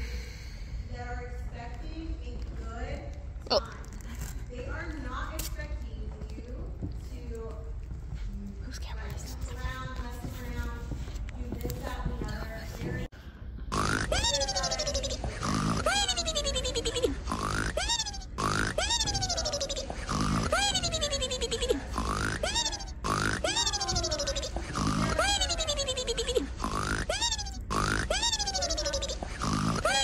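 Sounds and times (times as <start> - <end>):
cartoon snoring with whistle: 13.8 - 16.1, 17.0 - 25.5, 26.2 - 30.0
faint voices: 14.1 - 30.0.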